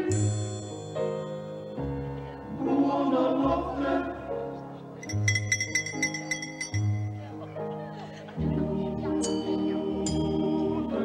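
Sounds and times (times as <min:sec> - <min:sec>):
high ringing notes: 0:05.0 - 0:07.2.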